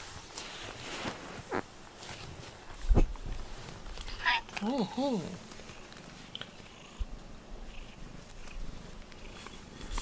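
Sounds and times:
cat purring: 4.8s - 10.0s.

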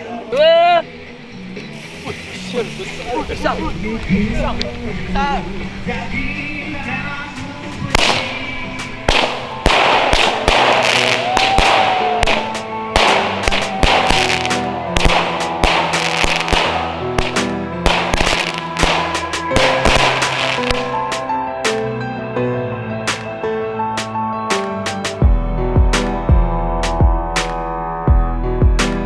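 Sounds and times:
background music: 0.0s - 29.0s
firework cake shots firing: 7.9s - 21.0s.

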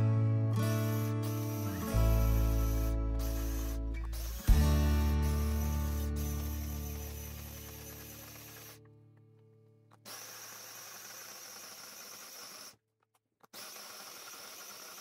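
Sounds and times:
electric food chopper running: 1.4s - 8.8s, 10.1s - 12.8s, 13.5s - 15.0s.

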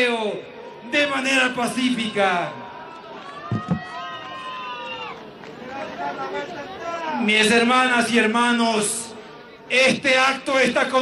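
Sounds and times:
crowd calling out: 0.0s - 7.3s.

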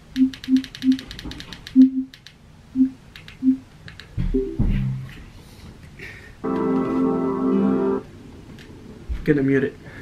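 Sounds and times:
remote control buttons clicking: 3.1s - 4.2s.

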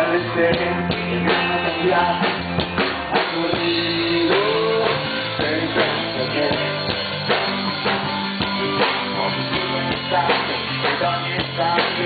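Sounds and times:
bass guitar: 0.0s - 12.0s
drum kit steady beat: 0.0s - 12.0s
electric guitar: 0.0s - 12.0s.

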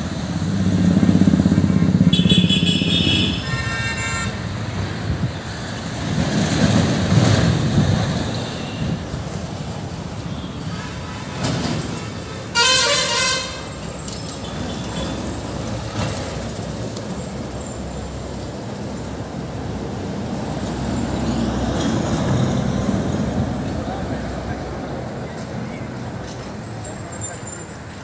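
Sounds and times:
road traffic noise: 0.0s - 28.0s
vehicle horn honking: 2.1s - 4.5s, 12.5s - 13.8s.

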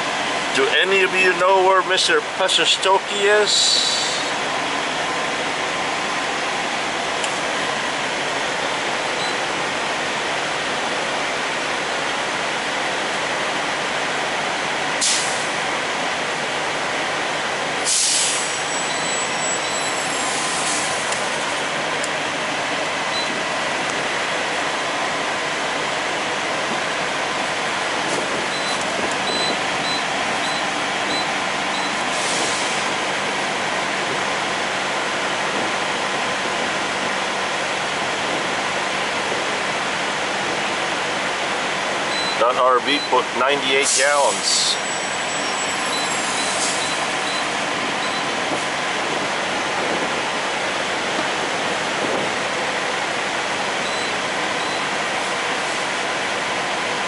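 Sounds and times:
diesel trucks idling: 0.0s - 57.0s
air brake hisses: 15.0s - 15.5s, 17.9s - 18.6s, 32.1s - 32.8s, 46.2s - 47.0s
faint high beeps: 18.7s - 20.0s, 28.5s - 32.0s, 44.8s - 48.3s.

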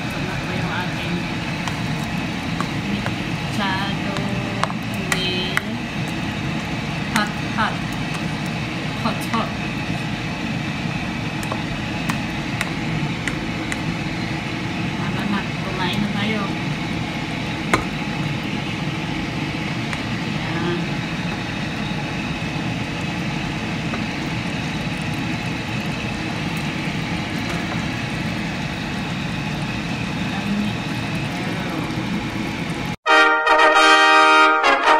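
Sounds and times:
loud brass fanfare: 33.0s - 34.9s.

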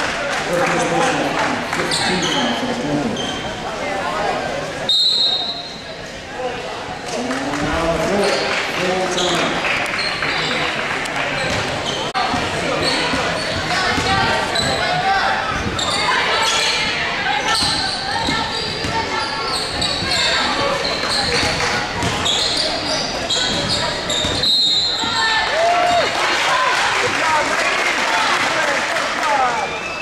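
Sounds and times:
voices calling and chattering: 0.0s - 30.0s.

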